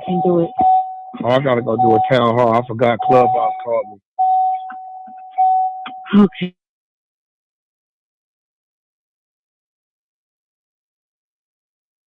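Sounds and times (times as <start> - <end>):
electronic chime tone: 0.0 - 6.1.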